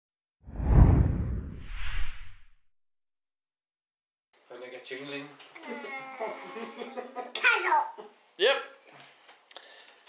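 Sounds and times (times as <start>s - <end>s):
deep loud whoosh: 0.5s - 2.5s
higher swish: 0.5s - 2.5s.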